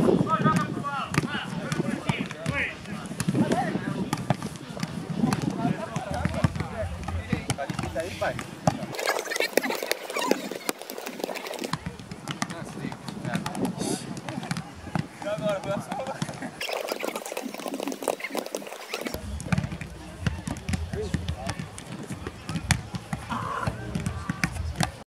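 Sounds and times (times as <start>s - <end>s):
footballs thudding: 0.4s - 25.0s
players calling out: 8.0s - 11.9s, 20.1s - 24.8s.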